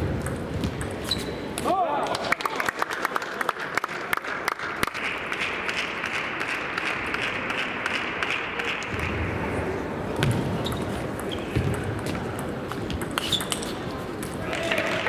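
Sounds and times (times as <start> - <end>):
table tennis ball hitting bats and table: 0.0 - 2.2, 4.8 - 9.3, 10.2 - 14.5.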